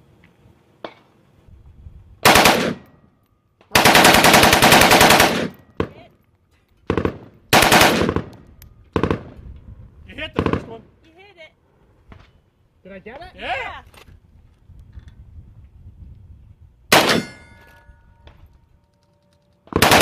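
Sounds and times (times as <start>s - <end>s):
rifle firing bursts: 2.2s - 2.8s, 3.7s - 5.9s, 6.9s - 8.3s, 9.0s - 9.3s, 16.9s - 17.2s, 19.7s - 20.0s.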